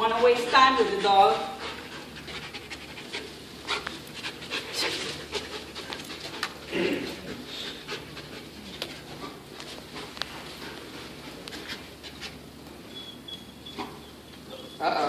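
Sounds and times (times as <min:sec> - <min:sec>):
dog panting and sniffing: 0:00.4 - 0:14.8.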